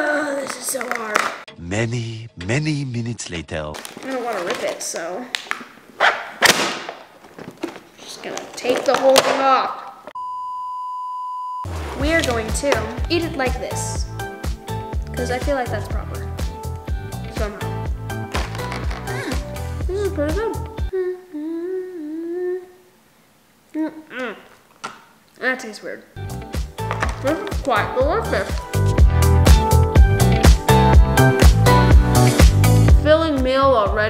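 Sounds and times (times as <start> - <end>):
plastic container crackling: 3.8 - 5.8, 6.8 - 9.6, 11.7 - 13.8, 18.2 - 19.4
girl humming: 19.0 - 23.0, 23.7 - 24.6.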